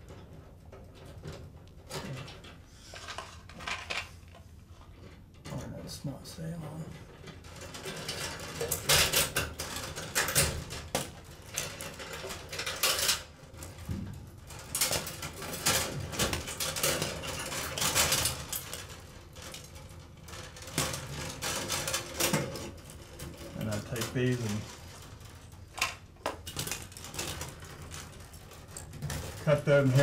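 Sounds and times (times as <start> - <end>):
small clicks and rattles: 0.0 - 5.8, 6.4 - 30.0.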